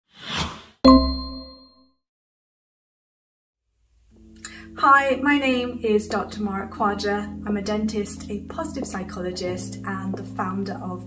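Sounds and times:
bright metallic ding: 0.9 - 1.8.

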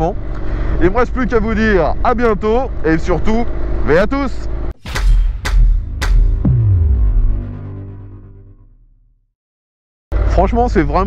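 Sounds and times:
sharp boom hit: 4.8 - 9.2
low rumble: 4.9 - 9.1
falling bass sweep: 4.9 - 9.3.

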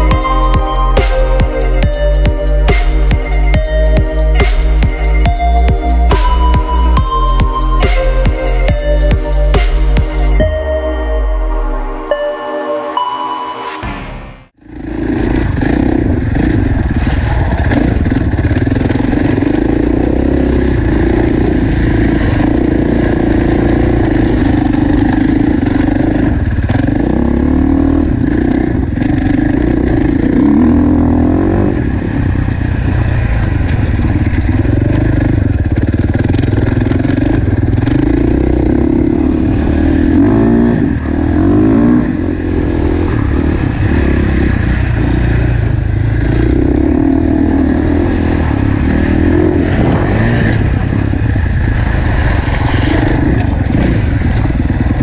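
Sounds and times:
music: 0.0 - 14.6
dirt bike engine revving: 14.6 - 55.0.

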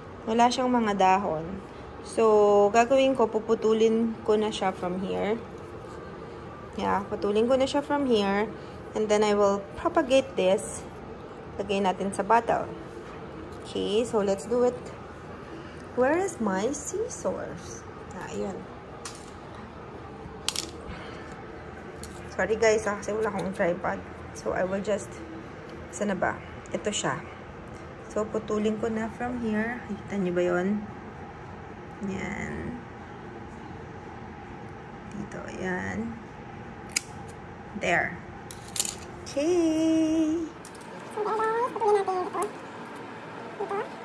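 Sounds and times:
dog whining: 43.5 - 44.0.

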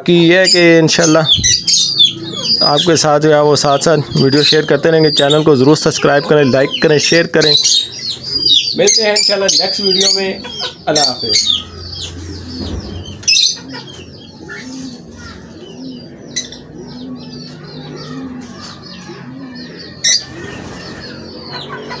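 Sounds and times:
pigeons cooing: 0.0 - 22.0
small birds chirping: 0.0 - 22.0
loud rushing noise: 12.0 - 13.4.

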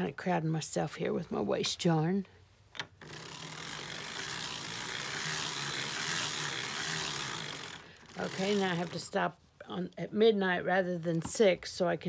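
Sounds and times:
sock knitting machine rattling: 3.0 - 9.2.

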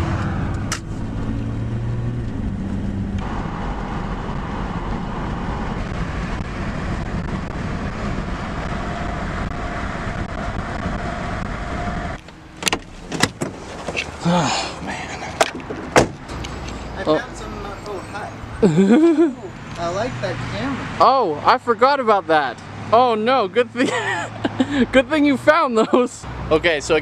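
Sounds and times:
car road and engine noise: 0.0 - 27.0
car door clicks: 12.2 - 14.2, 15.3 - 16.7.

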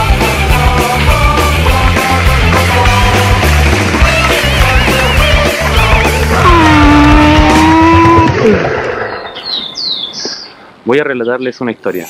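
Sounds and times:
rock music: 0.0 - 9.8
long sliding held tone: 6.4 - 8.3.

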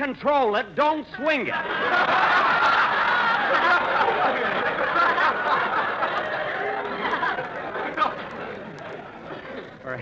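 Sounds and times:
audience laughter: 1.5 - 9.7
overlapping voices chattering: 3.5 - 10.0.

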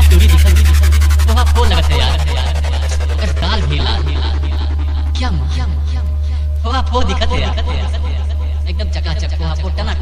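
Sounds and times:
sampled voice speaking: 0.0 - 6.0
deep bass drone: 0.0 - 10.0
rapid electronic beat roll: 0.0 - 10.0.

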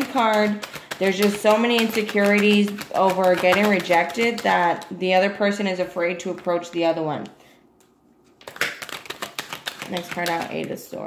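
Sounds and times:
cards being shuffled: 0.0 - 5.0, 8.2 - 10.8.

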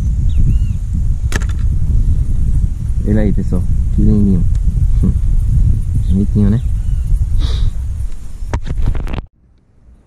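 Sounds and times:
wind buffeting microphone: 0.0 - 9.3
sharp click: 1.3 - 1.7.

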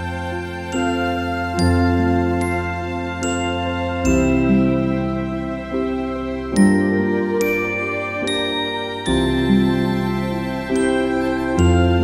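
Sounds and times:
soft bell-like chimes melody: 0.0 - 12.0.

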